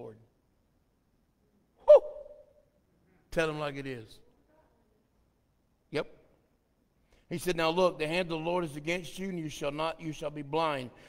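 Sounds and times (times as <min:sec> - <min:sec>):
person shouting woo: 0:01.8 - 0:02.5.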